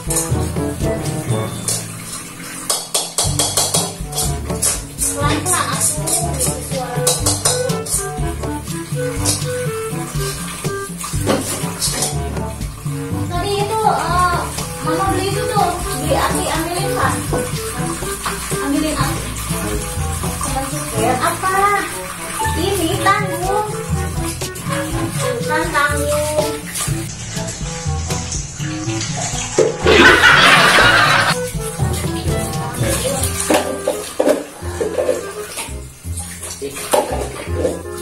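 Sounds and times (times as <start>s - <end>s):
background music: 0.0s - 38.0s
tap running into sink: 0.0s - 38.0s.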